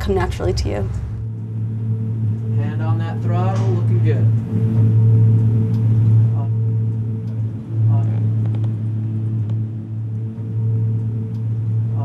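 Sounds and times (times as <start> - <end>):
aircraft engine drone: 0.0 - 12.0.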